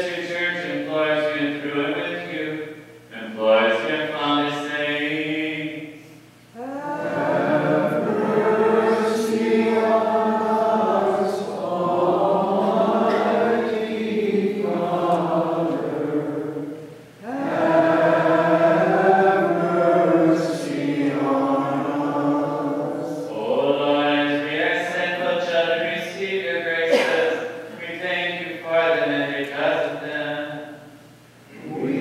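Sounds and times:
voices chanting: 0:06.6 - 0:29.9, 0:31.5 - 0:32.0.

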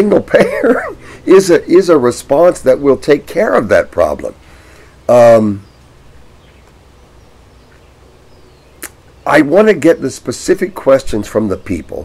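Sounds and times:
low outdoor background: 0:00.0 - 0:12.0
faint high bird chirps: 0:05.1 - 0:09.4
sharp click: 0:08.8 - 0:09.0.

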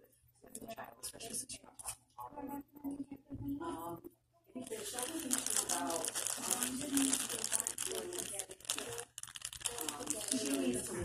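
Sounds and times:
people talking quietly: 0:00.0 - 0:11.0
close rustling and crinkling: 0:04.6 - 0:11.0.

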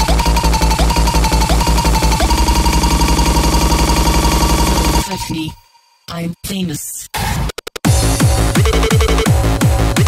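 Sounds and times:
happy hardcore dance music: 0:00.0 - 0:10.0.

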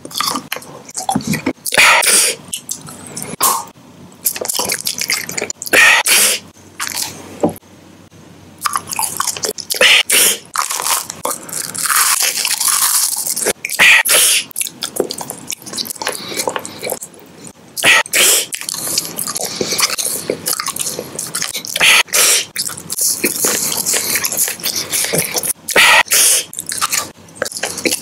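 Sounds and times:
candy being crunched and chewed: 0:10.5 - 0:13.6.

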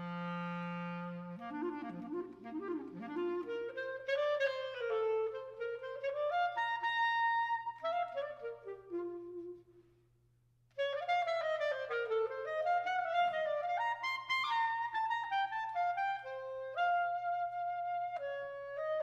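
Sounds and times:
clarinet solo: 0:00.0 - 0:10.0, 0:10.7 - 0:19.0.

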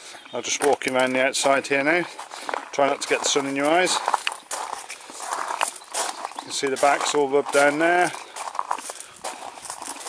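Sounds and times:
footsteps on gravel: 0:00.4 - 0:10.0.

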